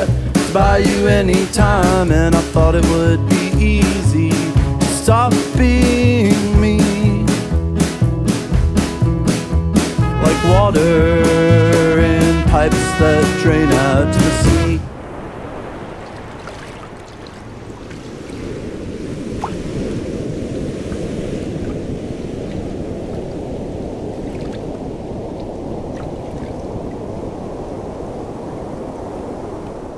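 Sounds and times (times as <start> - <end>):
ocean waves washing on beach: 0.0 - 7.1, 11.2 - 29.9.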